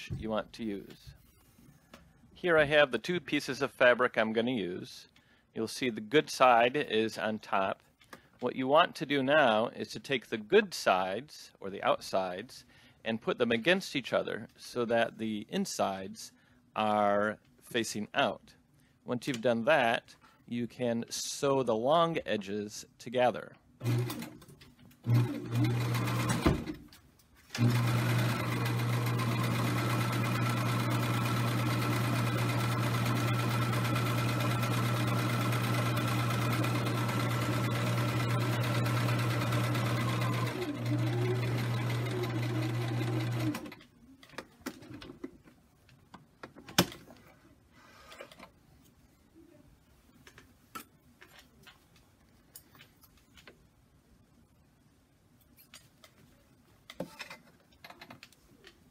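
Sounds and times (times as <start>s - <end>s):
electric sewing machine stitching: 23.8s - 24.4s, 25.0s - 26.7s, 27.6s - 43.8s.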